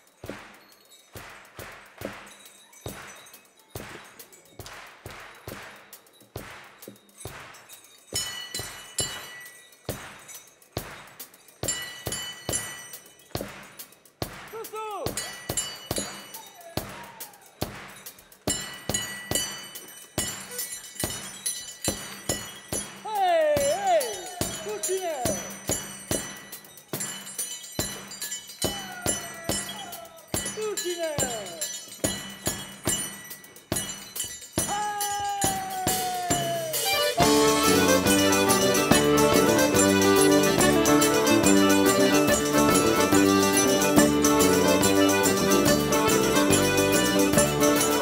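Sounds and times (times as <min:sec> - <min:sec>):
jingling clinking percussion: 0:00.0 - 0:48.0.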